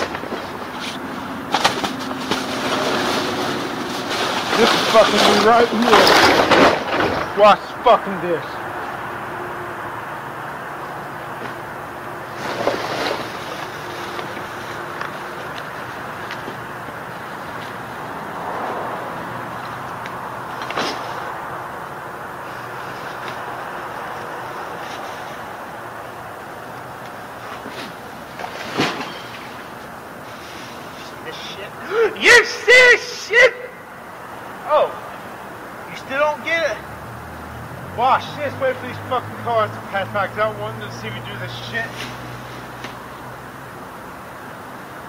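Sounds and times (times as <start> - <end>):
outdoor background noise: 0.0 - 45.0
trash crashing down: 1.4 - 7.6, 12.3 - 14.6, 27.5 - 29.7
man laughing or calling out: 31.3 - 33.8, 34.7 - 35.0.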